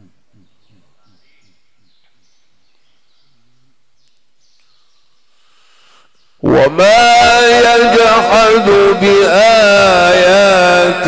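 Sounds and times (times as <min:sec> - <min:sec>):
man reciting over loudspeakers: 0:06.4 - 0:11.0.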